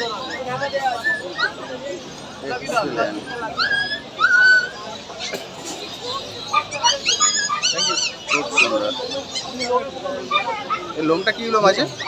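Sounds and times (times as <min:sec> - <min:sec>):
puppies whimpering and yipping: 0:00.0 - 0:12.0.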